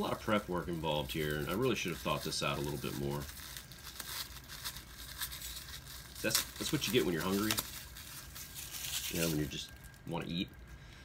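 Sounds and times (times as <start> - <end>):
plastic wrapper crinkling and tearing: 0.0 - 10.7.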